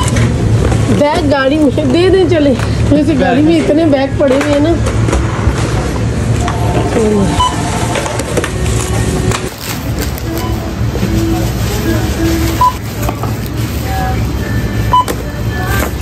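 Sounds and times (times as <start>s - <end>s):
steady low hum: 0.0s - 16.0s
store background music: 6.0s - 16.0s
register short beeps: 6.4s - 8.0s, 12.6s - 12.8s.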